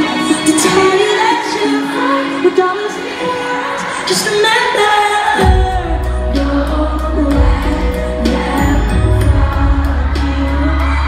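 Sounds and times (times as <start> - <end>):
live pop band music: 0.0 - 11.0
person singing: 0.0 - 11.0.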